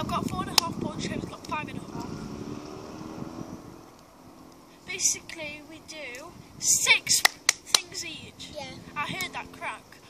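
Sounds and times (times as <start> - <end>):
distant vehicle engine hum: 0.0 - 10.0.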